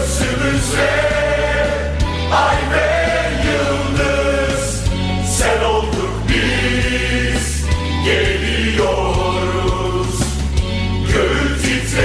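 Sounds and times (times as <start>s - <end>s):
band with bass and beat: 0.0s - 12.0s
choir singing an anthem: 0.0s - 12.0s.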